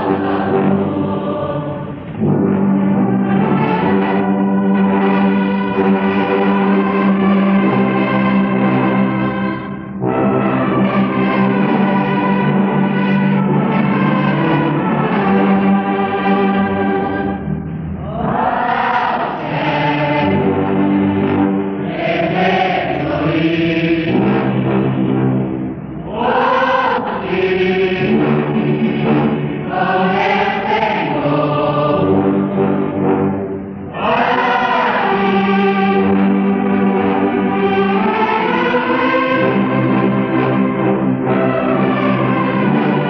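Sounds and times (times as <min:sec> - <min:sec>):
congregation singing a hymn: 0:00.0 - 0:43.0
orchestra sustained notes: 0:00.0 - 0:43.0.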